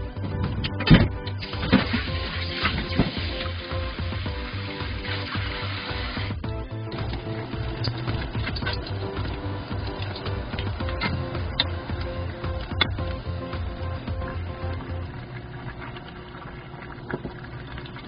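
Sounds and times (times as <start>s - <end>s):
background music with a beat: 0.0s - 15.2s
tap water running into steel bowl: 1.4s - 6.4s, 7.0s - 18.0s.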